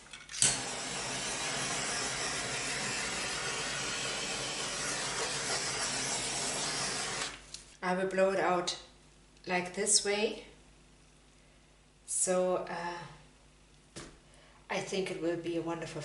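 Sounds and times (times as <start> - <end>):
torch flame hissing: 0.6 - 7.4.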